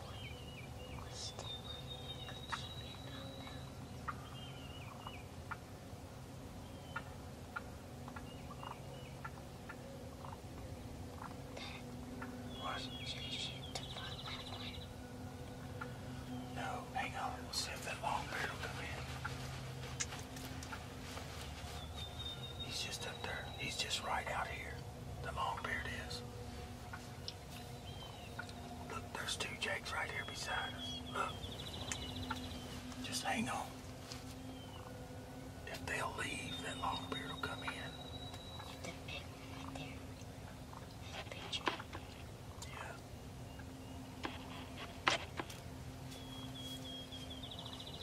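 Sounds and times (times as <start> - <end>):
people whispering: 0.0 - 4.2, 11.5 - 27.8, 28.5 - 33.8, 35.6 - 40.2, 41.0 - 43.1
faint steady hum: 0.0 - 48.0
wild turkeys calling: 3.9 - 5.8, 6.7 - 26.2, 26.8 - 33.8, 34.6 - 35.0, 35.7 - 38.8.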